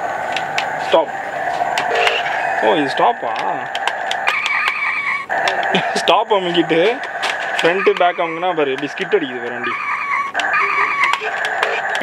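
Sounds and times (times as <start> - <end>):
steady electronic tone: 0.0 - 12.0
electronic toy sound effects: 1.8 - 12.0.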